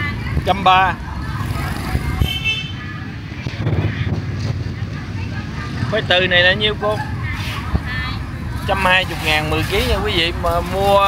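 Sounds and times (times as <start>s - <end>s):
distant voice: 0.0s - 11.0s
low rumble of market noise: 0.0s - 11.0s.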